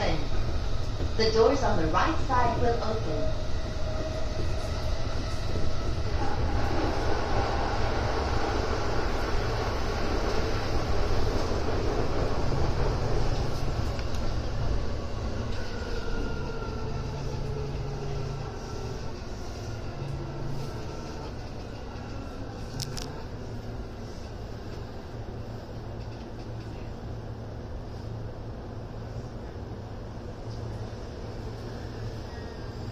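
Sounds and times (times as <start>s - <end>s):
train wheels rumbling on rail: 0.0s - 32.9s.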